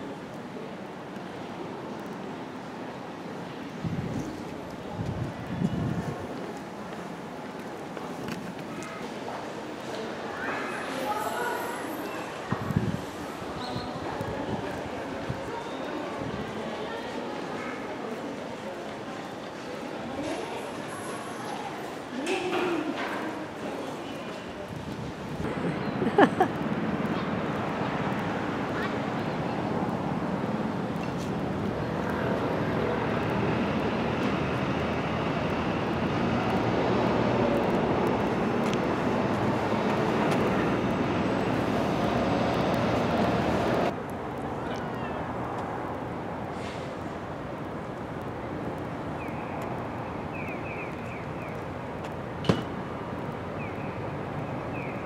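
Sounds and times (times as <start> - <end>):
road traffic noise: 0.0 - 55.0.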